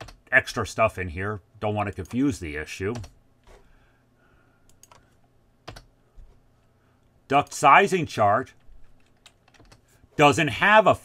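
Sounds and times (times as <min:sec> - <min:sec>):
computer keyboard keys clicking: 0:04.7 - 0:05.9, 0:08.9 - 0:09.8.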